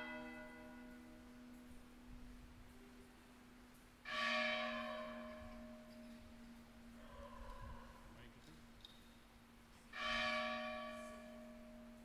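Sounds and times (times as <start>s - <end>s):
church bell tolling: 0.0s - 1.7s, 4.0s - 6.9s, 9.9s - 12.0s.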